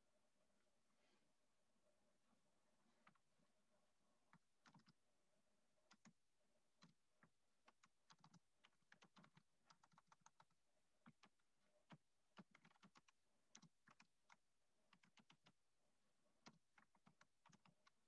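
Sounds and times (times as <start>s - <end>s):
faint keyboard typing: 2.9s - 3.3s, 4.2s - 5.0s, 5.9s - 15.6s, 16.3s - 18.0s.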